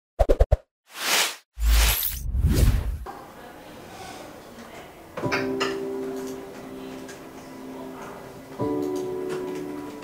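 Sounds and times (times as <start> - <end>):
whoosh: 0.9 - 3.1.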